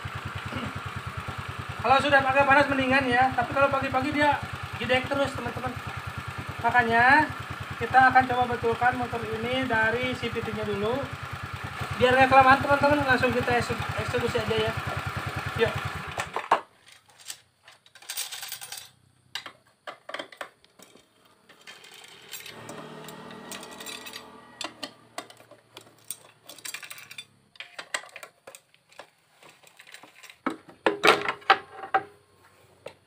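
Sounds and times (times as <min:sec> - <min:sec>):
loose bolts clinking: 0:21.6 - 0:31.5.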